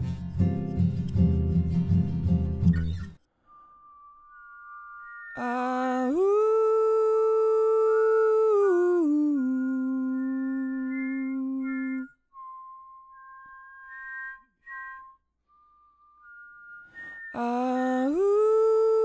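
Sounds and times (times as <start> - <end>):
thin high notes: 3.3 - 7.8, 10.0 - 18.2
man singing wordless harmonies: 5.4 - 12.1, 17.4 - 19.0.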